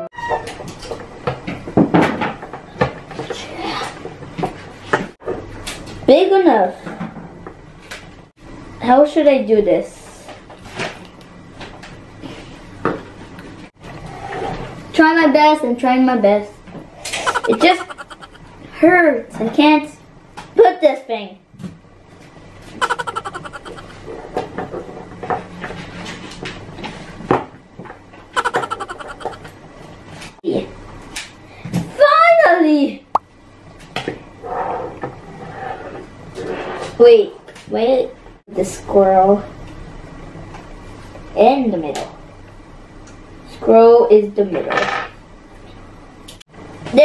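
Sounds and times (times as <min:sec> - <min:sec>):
child murmuring: 0:17.3 - 0:18.4, 0:22.8 - 0:24.0, 0:28.4 - 0:29.4.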